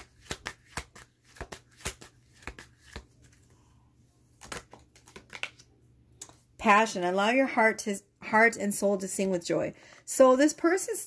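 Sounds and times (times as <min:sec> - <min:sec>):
cards being shuffled: 0:00.0 - 0:03.6, 0:04.3 - 0:05.7.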